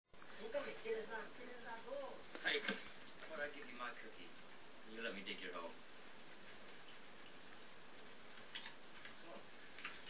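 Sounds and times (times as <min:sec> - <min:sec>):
low steady hiss: 0:00.2 - 0:10.0.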